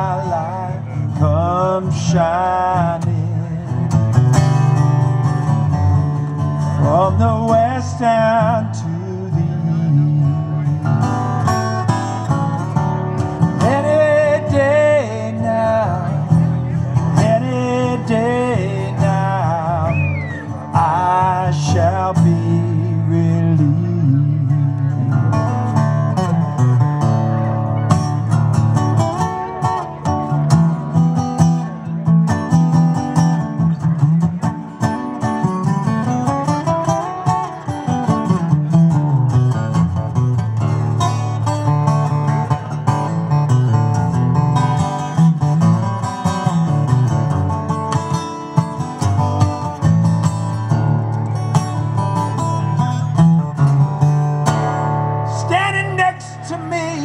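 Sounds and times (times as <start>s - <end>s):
acoustic guitar through pa: 0.0s - 57.0s.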